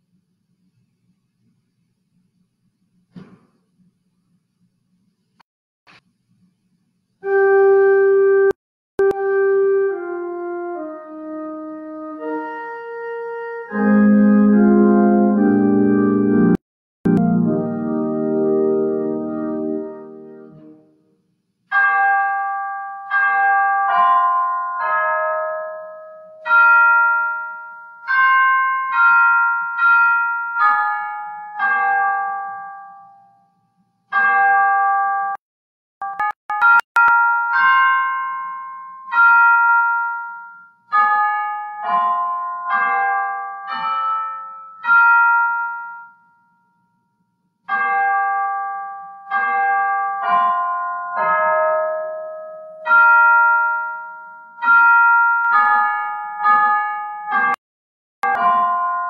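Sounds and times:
piano playing slow chords: 7.3 - 21.0.

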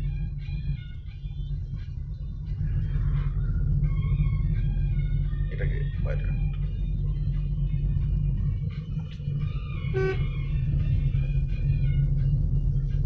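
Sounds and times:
car engine and road rumble: 0.0 - 13.0
music playing: 0.0 - 13.0
short pitched tone: 9.9 - 10.4.

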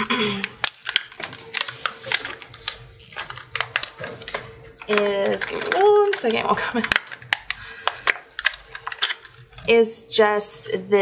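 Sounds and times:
plastic packaging clicking and snapping: 0.3 - 9.7.

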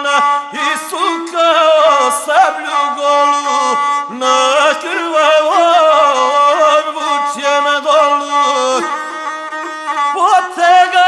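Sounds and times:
bowed single-string fiddle melody: 0.0 - 11.0.

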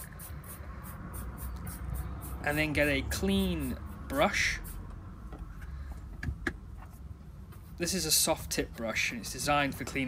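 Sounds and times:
spray bottle squirting hisses: 0.0 - 2.4.

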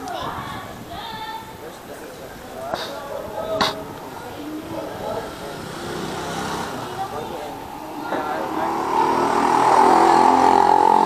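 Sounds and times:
vehicle engine approaching: 4.4 - 11.0.

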